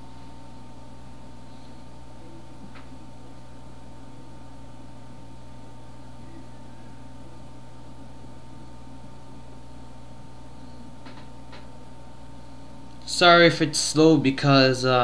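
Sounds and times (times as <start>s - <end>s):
electrical hum and hiss: 0.0s - 15.0s
high whine: 0.0s - 15.0s.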